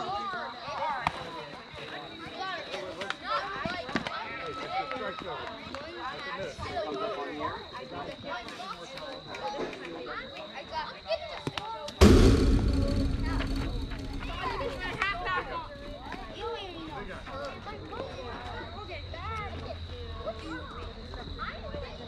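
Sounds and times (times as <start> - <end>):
loud thump with low rumble: 12.0 - 16.6.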